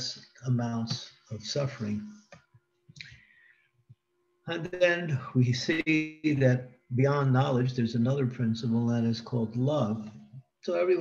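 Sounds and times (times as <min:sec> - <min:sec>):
man talking: 0:00.0 - 0:02.2, 0:04.5 - 0:11.0
faint steady hum: 0:00.0 - 0:11.0.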